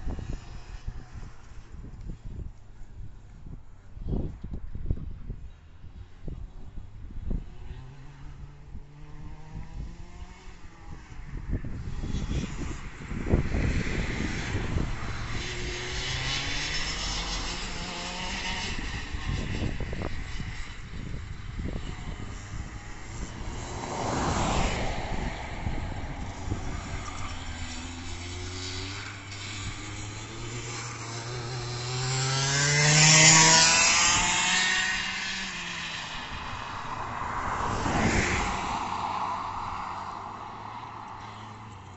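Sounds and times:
kart engine revving: 0:11.8 - 0:41.6.

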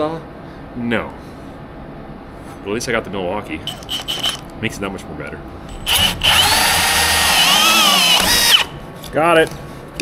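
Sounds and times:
drill motor whining: 0:03.7 - 0:04.4, 0:05.8 - 0:08.8
hole saw cutting wood: 0:03.7 - 0:04.4, 0:05.7 - 0:08.8.

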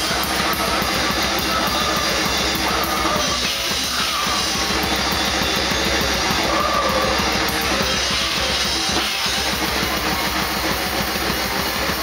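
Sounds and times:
grindcore band playing: 0:00.0 - 0:12.0
rapid bass drum strokes: 0:00.0 - 0:12.0.

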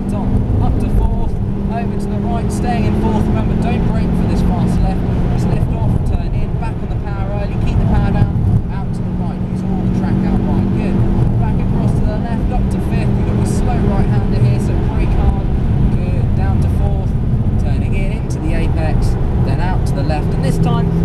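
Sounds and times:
car engine at high revs: 0:00.0 - 0:21.0.

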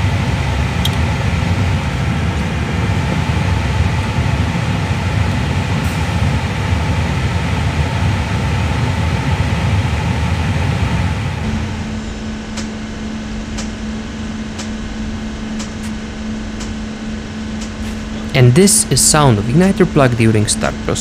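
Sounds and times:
low rumble: 0:00.0 - 0:21.0
steady hum: 0:00.0 - 0:21.0.

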